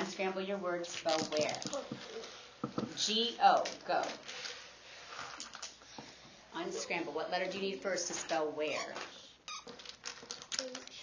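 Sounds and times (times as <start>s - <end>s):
child's high voice: 10.6s - 11.0s.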